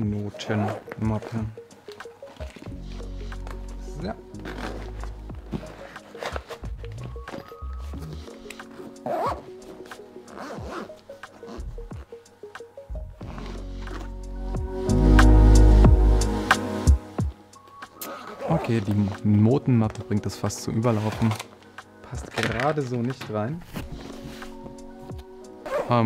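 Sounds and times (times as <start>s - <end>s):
background music: 0.0s - 26.0s
zipper being pulled: 0.4s - 1.5s, 4.3s - 12.1s, 13.2s - 14.2s, 18.0s - 19.2s, 20.9s - 21.6s, 25.5s - 26.0s.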